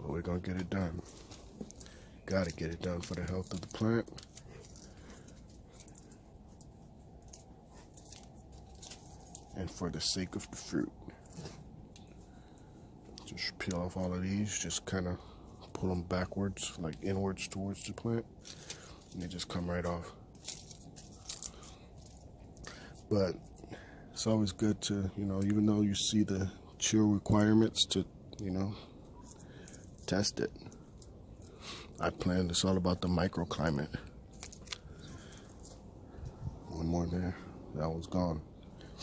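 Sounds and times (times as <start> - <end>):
leaves rustling and snapping: 0.5 - 12.5, 16.7 - 23.7, 34.2 - 35.8.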